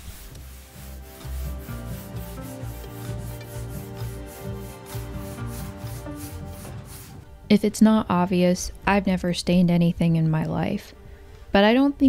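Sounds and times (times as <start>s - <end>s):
rag rubbing on wood: 0.0s - 7.2s
background music: 0.0s - 12.0s.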